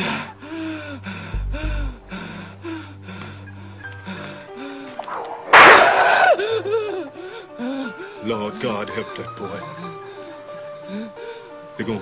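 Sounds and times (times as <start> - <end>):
low sustained music drone: 0.0 - 11.9
whip lashes: 5.0 - 6.3.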